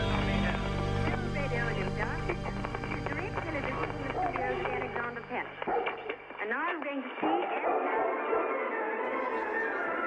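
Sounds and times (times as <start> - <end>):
low steady drone: 0.0 - 5.6
voice samples: 0.0 - 5.7.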